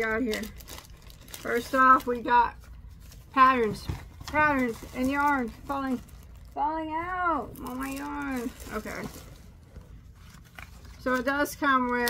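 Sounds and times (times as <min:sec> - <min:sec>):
paper rustling and crinkling: 0:00.0 - 0:06.6, 0:07.5 - 0:12.0
low room hum: 0:00.0 - 0:12.0.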